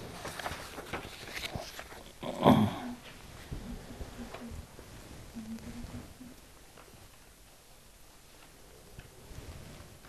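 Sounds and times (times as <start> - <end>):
paper rustling and shuffling: 0.0 - 2.2.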